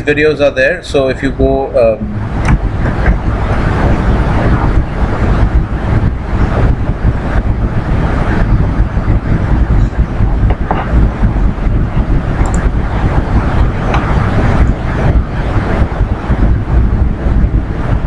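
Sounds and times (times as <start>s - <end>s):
loud low rumbling noise: 0.0s - 18.0s.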